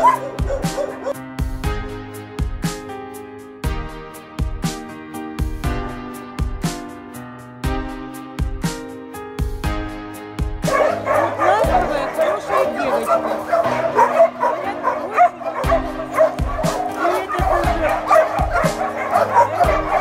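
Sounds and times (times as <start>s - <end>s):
many dogs barking: 0.0s - 1.2s, 10.6s - 20.0s
background music with beat: 0.0s - 14.5s, 15.5s - 20.0s.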